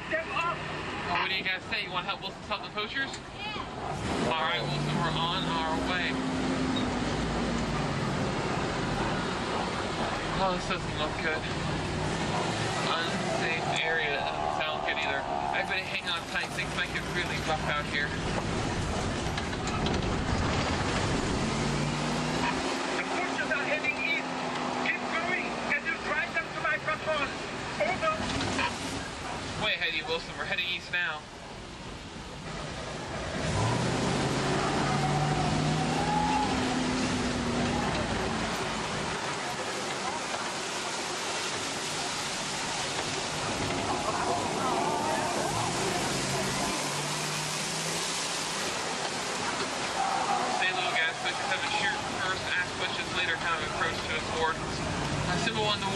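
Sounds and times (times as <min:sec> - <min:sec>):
faint voices: 0:00.0 - 0:31.4, 0:34.2 - 0:55.9
truck engine rumbling on dirt track: 0:00.0 - 0:55.9
waterfall rushing: 0:00.0 - 0:55.9
passengers calling out excitedly: 0:11.7 - 0:21.0, 0:34.4 - 0:55.9.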